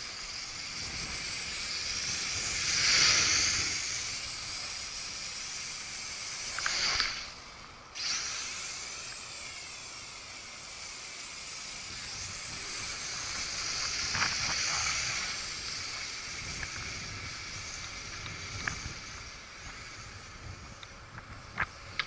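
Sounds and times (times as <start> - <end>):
low wind rumble: 0.0 - 8.0, 11.8 - 22.0
quadcopter propellers whining: 0.0 - 22.0.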